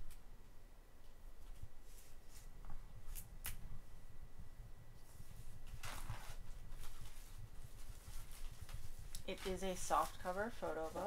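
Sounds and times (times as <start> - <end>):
plastic shrink wrap crinkling: 5.3 - 11.0.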